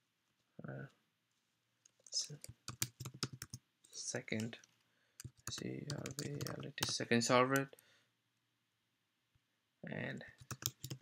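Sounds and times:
computer keyboard typing: 2.3 - 3.6, 4.3 - 7.1, 10.3 - 11.0.

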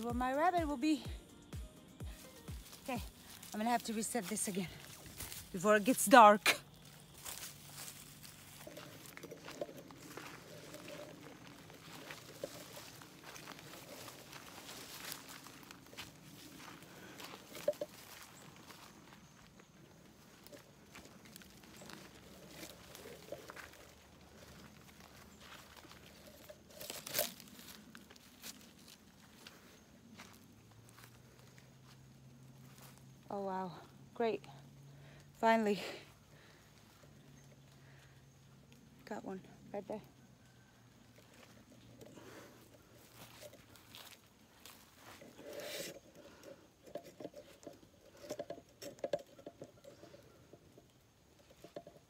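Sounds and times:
person speaking: 0.0 - 1.3, 2.2 - 6.7
footsteps through undergrowth: 2.0 - 33.8, 40.0 - 50.3.

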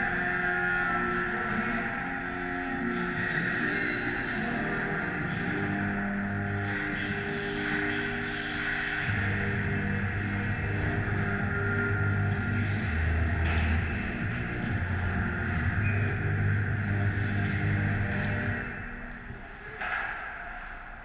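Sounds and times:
music over sound system: 0.0 - 21.0
steady background hiss: 0.0 - 21.0.

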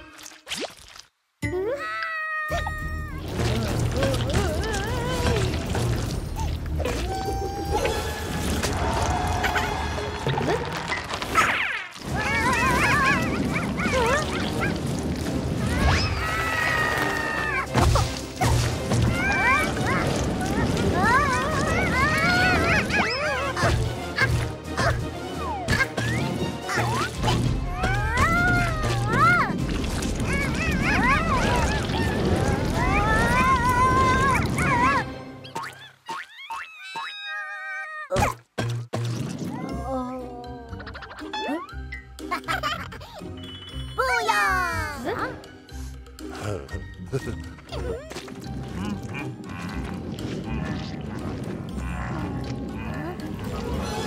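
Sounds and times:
background music: 2.5 - 11.4, 12.0 - 35.8, 38.2 - 54.0
squeaky cartoon voice crying: 35.7 - 38.2, 40.6 - 41.8
cartoon high-pitched whining cry: 36.4 - 38.2.

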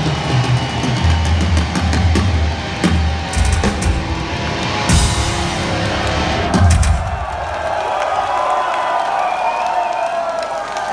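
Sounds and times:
metal band playing live: 0.0 - 7.8
crowd cheering and shouting: 0.0 - 10.9.

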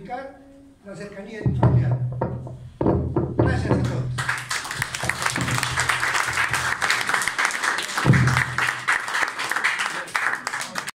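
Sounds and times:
audience clapping: 3.8 - 10.9.

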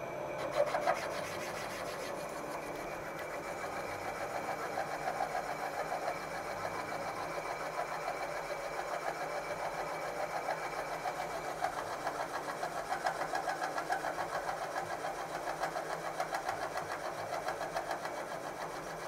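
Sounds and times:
milling machine spindle running: 0.0 - 19.0.

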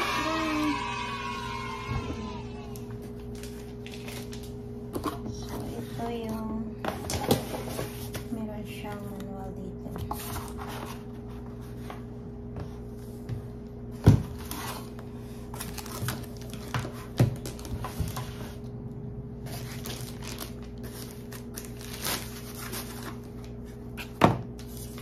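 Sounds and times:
steady low hum: 0.0 - 25.0
packaging rustling and crinkling: 3.0 - 4.6, 14.3 - 18.6, 19.4 - 25.0.

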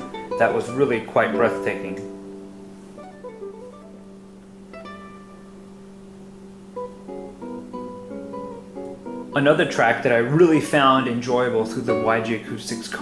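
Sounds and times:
acoustic guitar plucking: 0.0 - 13.0.

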